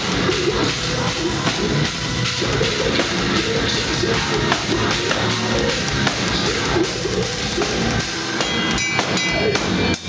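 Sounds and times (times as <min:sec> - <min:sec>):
driving bass drum: 0:00.0 - 0:10.0
heavy metal band playing live: 0:00.0 - 0:10.0.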